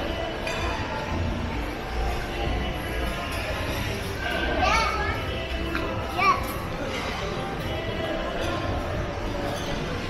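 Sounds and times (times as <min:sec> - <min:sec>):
background music: 0:00.0 - 0:10.0
indoor hall hubbub: 0:00.0 - 0:10.0.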